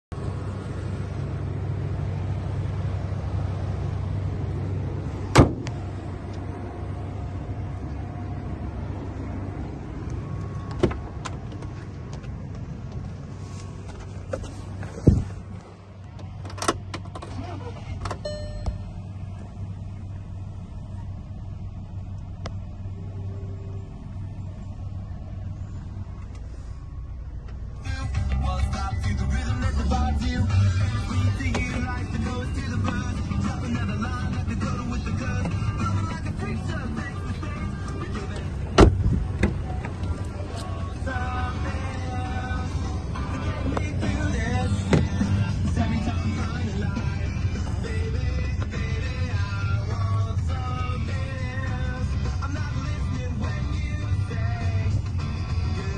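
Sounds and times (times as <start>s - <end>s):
car engine idling: 0.1s - 55.9s
car bonnet slamming: 5.3s - 5.8s, 38.7s - 39.6s.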